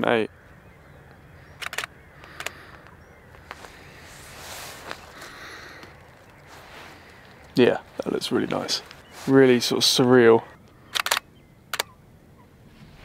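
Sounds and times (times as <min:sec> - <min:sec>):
camera shutter clicks: 0:01.6 - 0:02.6, 0:10.9 - 0:11.9
soft rustle: 0:02.5 - 0:10.2, 0:12.6 - 0:13.0.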